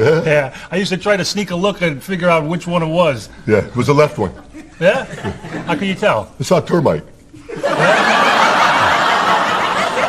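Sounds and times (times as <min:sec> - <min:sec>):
studio audience laughing: 0:07.4 - 0:10.0.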